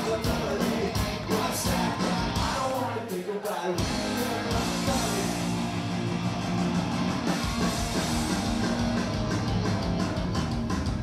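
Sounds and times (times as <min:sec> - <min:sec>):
bass guitar: 0:00.0 - 0:03.0, 0:03.8 - 0:11.0
electric guitars: 0:00.0 - 0:03.0, 0:03.8 - 0:11.0
drum kit: 0:00.0 - 0:11.0.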